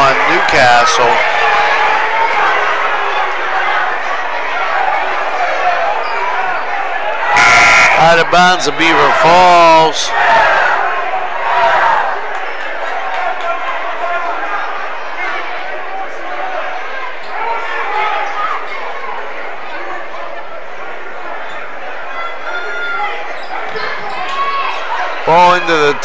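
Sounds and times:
crowd chattering and calling out: 0.0 - 26.0.

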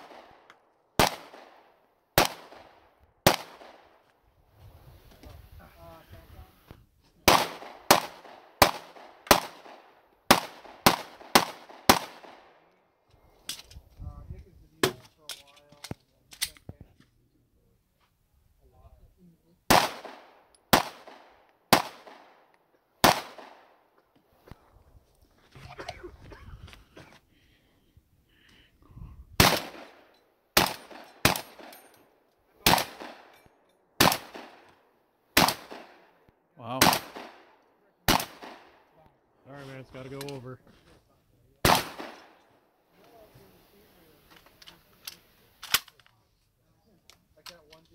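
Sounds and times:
pistol shots: 0.0 - 4.0, 7.2 - 12.6, 19.7 - 23.8, 29.4 - 31.8, 32.6 - 33.3, 34.0 - 34.8, 35.4 - 36.2, 36.8 - 38.8, 41.6 - 42.4
long gun shots: 1.0 - 4.0, 7.2 - 12.6, 19.7 - 22.4, 23.0 - 23.7, 29.4 - 31.8, 32.6 - 33.3, 34.0 - 34.7, 35.4 - 36.1, 36.7 - 37.5, 38.1 - 38.8, 41.6 - 42.4.

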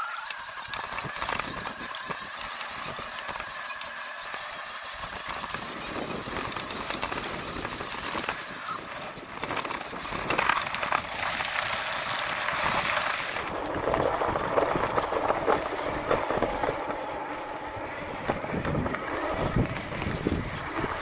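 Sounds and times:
bike tyres rumbling over rough ground: 0.0 - 21.0.

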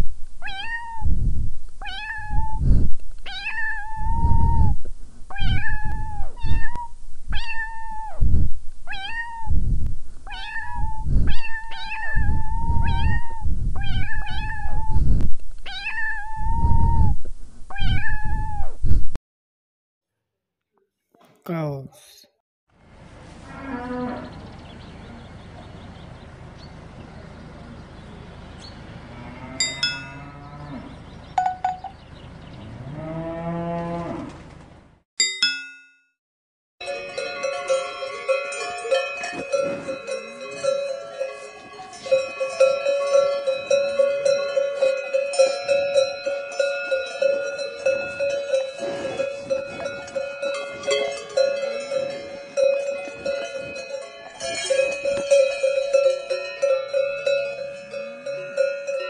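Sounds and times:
cat meowing: 0.4 - 1.1, 1.8 - 2.6, 3.3 - 8.2, 8.9 - 9.6, 10.3 - 15.0, 15.7 - 17.1, 17.7 - 18.7
cows mooing: 23.5 - 24.4, 29.0 - 31.1, 32.6 - 34.4, 47.4 - 52.2
bell ringing: 29.6 - 30.3, 31.4 - 32.0, 36.8 - 59.0
cowbells clanking: 29.6 - 30.4, 31.4 - 32.0, 36.8 - 59.0.

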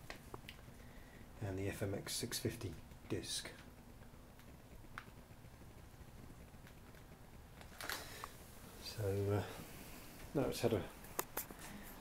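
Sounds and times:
camera handling noise: 7.6 - 8.4.

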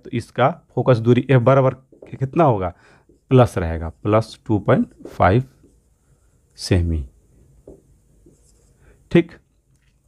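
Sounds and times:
marker scratching on whiteboard: 1.4 - 6.0, 7.7 - 8.8.

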